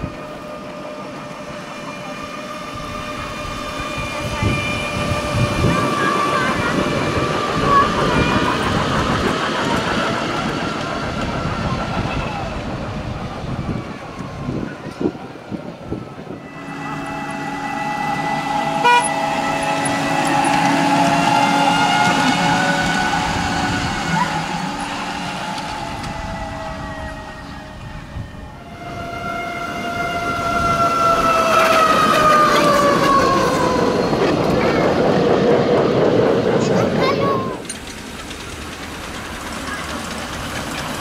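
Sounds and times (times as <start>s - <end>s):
locomotive chime whistle blowing: 16.4s - 23.5s.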